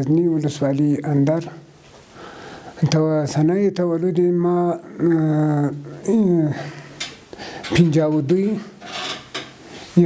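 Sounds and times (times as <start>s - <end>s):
man speaking: 0.0s - 1.7s, 2.8s - 6.8s, 7.7s - 8.8s.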